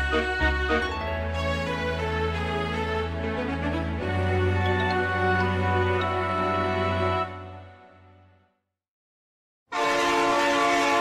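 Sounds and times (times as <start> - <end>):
train whistle blast: 9.7 - 11.0.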